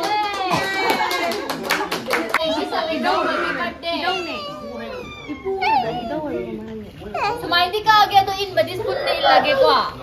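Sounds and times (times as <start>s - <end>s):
women and children talking: 0.0s - 1.3s, 2.1s - 10.0s.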